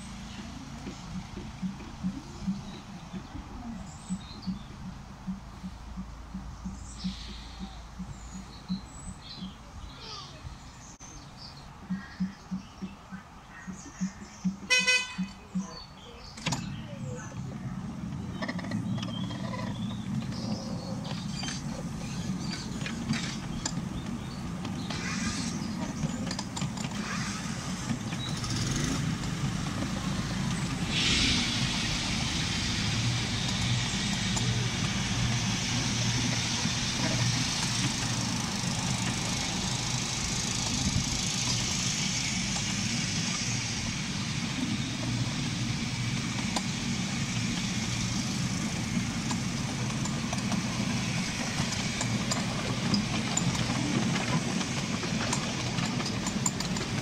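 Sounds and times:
locomotive low drone: 0:00.0 - 0:57.0
wheels rumbling on rails: 0:00.0 - 0:57.0.

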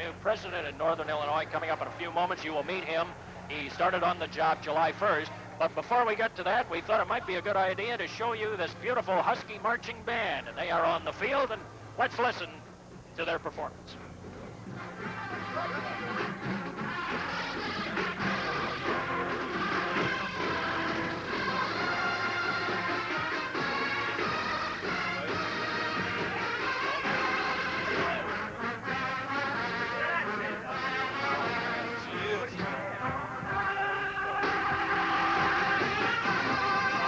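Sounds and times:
marching band playing: 0:14.4 - 0:37.0.

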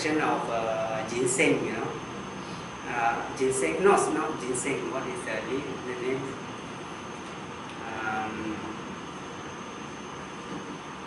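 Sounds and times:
air conditioning noise: 0:00.0 - 0:11.0
thin high whine: 0:00.0 - 0:11.0.

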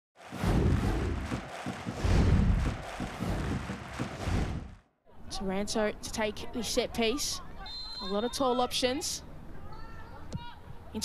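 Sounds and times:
whooshing noise: 0:00.2 - 0:04.8
deep bass booms: 0:00.4 - 0:04.8.

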